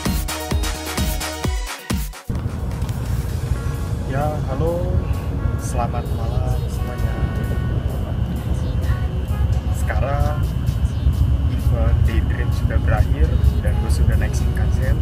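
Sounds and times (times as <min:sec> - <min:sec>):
train rumble inside carriage: 0:02.3 - 0:15.0
man talking: 0:04.0 - 0:07.4, 0:09.7 - 0:10.6, 0:11.5 - 0:15.0.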